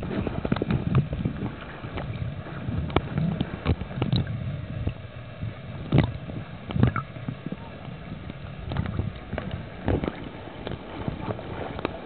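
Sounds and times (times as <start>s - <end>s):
muffled underwater water movement: 0.0s - 12.0s.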